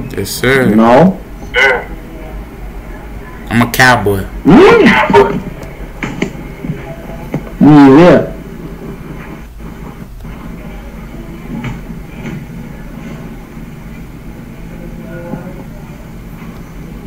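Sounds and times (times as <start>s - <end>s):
faint voices: 0.0s - 17.0s.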